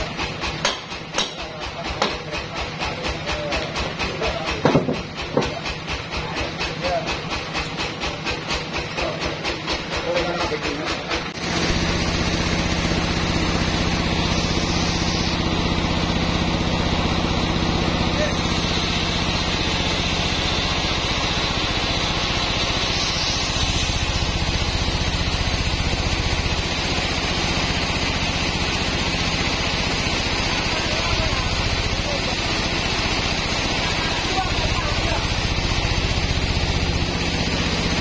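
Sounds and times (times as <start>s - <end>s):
band saw cutting log: 11.3s - 38.0s
low motor hum: 11.4s - 38.0s.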